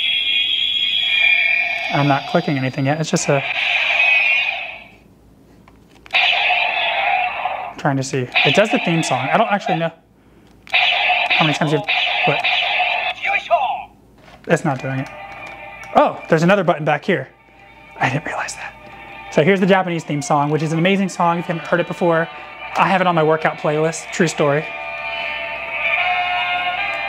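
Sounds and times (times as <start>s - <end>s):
high-pitched electronic tone: 0.0s - 5.0s
toy gun electronic sound: 0.0s - 5.0s, 6.1s - 9.9s, 10.7s - 13.5s.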